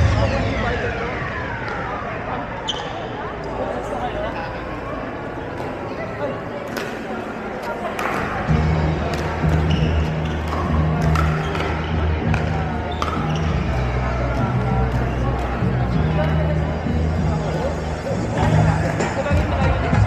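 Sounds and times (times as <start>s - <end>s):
chatter in echoing hall: 0.0s - 20.0s
bass-heavy background music: 8.5s - 20.0s.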